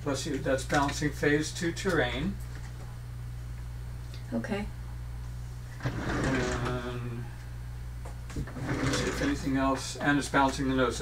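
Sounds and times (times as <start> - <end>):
wooden drawers sliding open: 5.8 - 6.9, 8.3 - 9.5.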